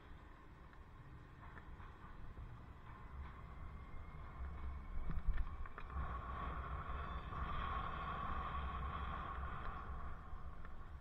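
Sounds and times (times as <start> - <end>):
street traffic noise: 0.0 - 11.0
wind rumbling on microphone: 0.2 - 11.0.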